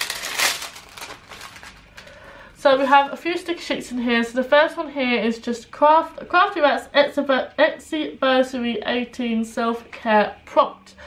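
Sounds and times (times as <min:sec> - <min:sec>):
cellophane packaging crinkling: 0:00.0 - 0:02.3.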